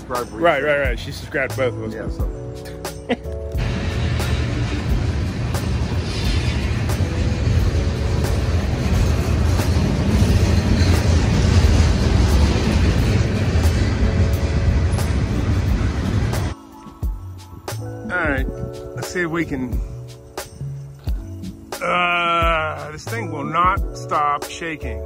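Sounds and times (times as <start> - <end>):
faint background music: 0.0 - 2.8
freight train wheels rumbling: 3.5 - 16.6.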